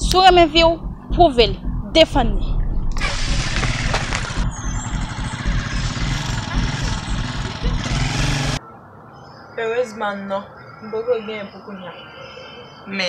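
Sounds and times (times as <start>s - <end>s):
motor vehicle running: 0.0s - 8.6s
loud outdoor street noise: 2.9s - 9.6s.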